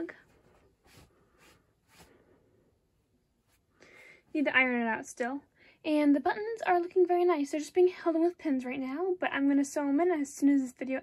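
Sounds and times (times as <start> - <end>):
fabric rustling: 0.0 - 2.4.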